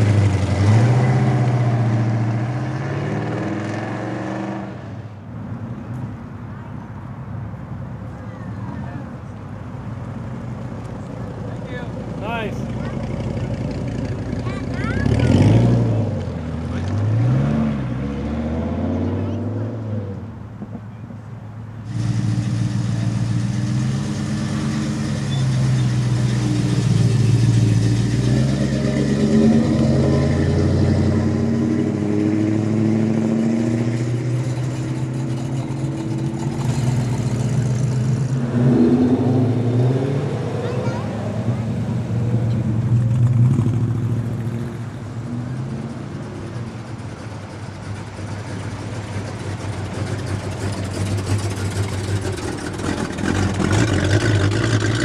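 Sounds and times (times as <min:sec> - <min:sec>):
engine revving: 0:00.0 - 0:04.8, 0:12.4 - 0:20.1, 0:21.9 - 0:44.8, 0:49.8 - 0:55.0
cars driving slowly past: 0:00.0 - 0:55.0.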